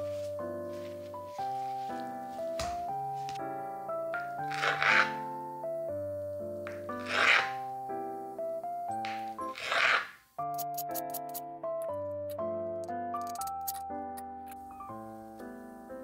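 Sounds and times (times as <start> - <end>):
gentle background music: 0.0 - 16.0
knife slicing onto cutting board: 4.5 - 5.2.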